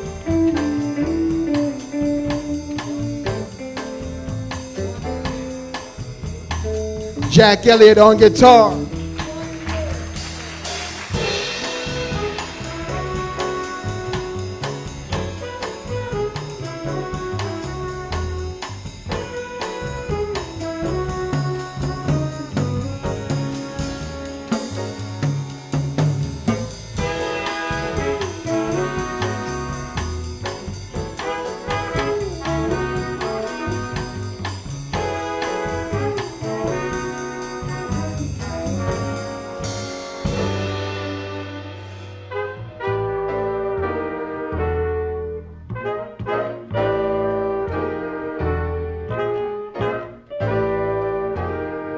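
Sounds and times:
alto saxophone: 0.0 - 3.8, 6.9 - 25.2, 26.4 - 51.9
drums: 0.0 - 51.9
upright bass: 0.0 - 51.9
trumpets: 7.3 - 25.7, 26.4 - 51.9.

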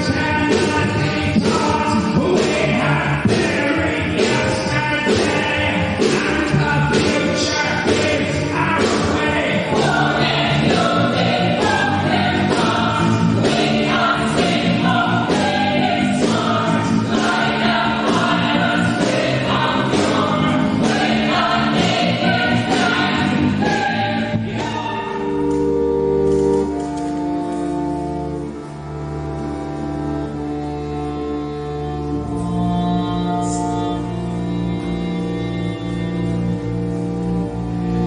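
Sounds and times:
choir singing: 0.0 - 25.6
instrumental ensemble: 0.0 - 38.0.

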